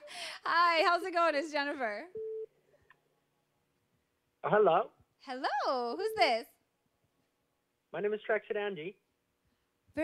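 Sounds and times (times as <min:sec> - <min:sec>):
telephone line beep: 0:02.2 - 0:02.5.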